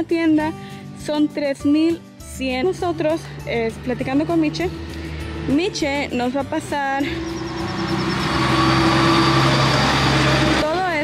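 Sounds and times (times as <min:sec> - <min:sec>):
truck driving past: 0:02.9 - 0:11.0.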